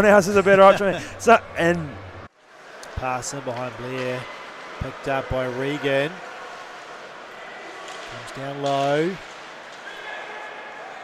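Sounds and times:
arena noise: 0.0 - 11.0.

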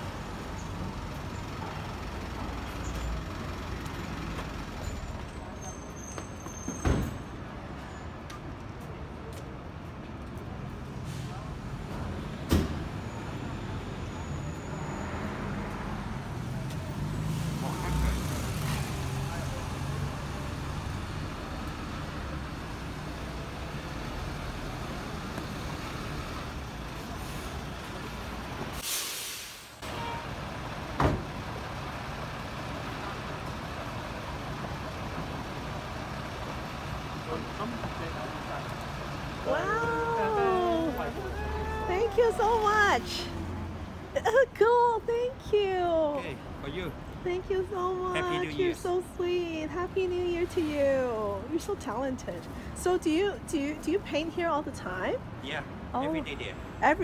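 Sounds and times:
passing vehicles rumbling: 0.0 - 28.8, 29.4 - 57.0
brief hiss: 28.8 - 29.9.

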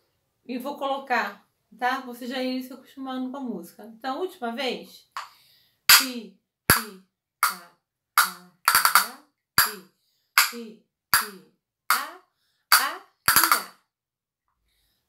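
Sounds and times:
castanets clicking: 8.2 - 9.7, 12.7 - 13.7.

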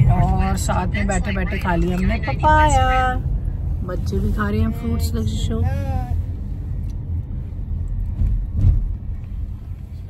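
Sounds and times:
road and engine rumble in car: 0.0 - 10.0.

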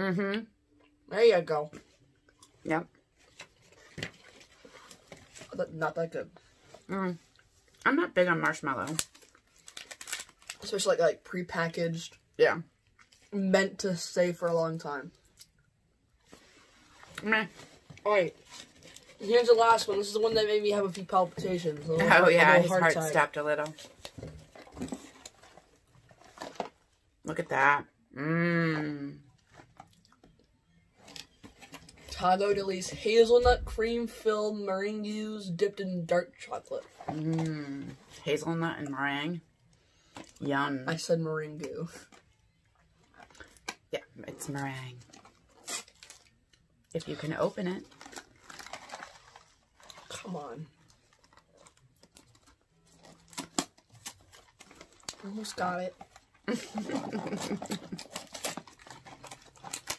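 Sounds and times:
snack wrapper crackling: 8.5 - 10.9, 47.8 - 59.9.

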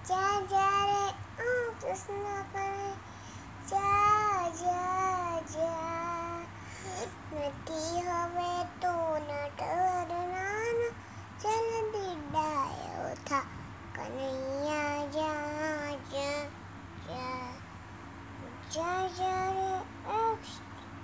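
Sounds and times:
girl singing: 0.0 - 17.7, 18.4 - 21.0.

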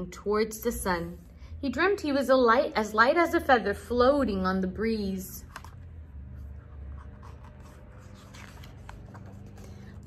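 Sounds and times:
low room hum: 0.0 - 10.0
book pages rustling: 5.4 - 10.0.

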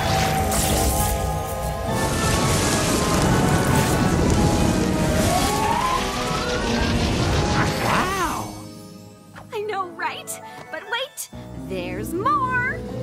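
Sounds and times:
orchestral background music: 0.0 - 13.0.

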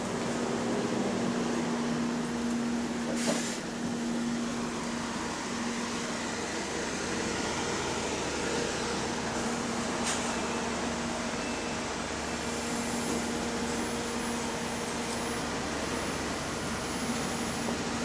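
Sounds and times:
bus engines droning: 0.0 - 18.0.

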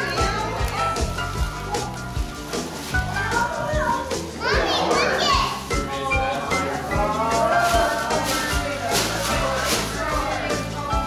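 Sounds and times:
children calling out excitedly: 0.0 - 6.0
background music with steady beat: 0.0 - 11.0.

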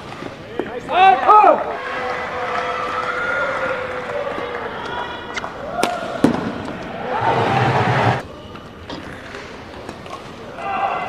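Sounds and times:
voices: 0.5 - 11.0
people shouting: 1.0 - 8.2, 10.6 - 11.0
racket hitting shuttlecock: 5.3 - 6.9.

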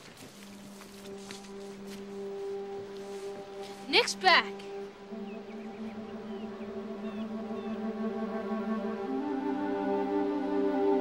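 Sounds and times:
film score of sustained chords: 0.2 - 11.0.

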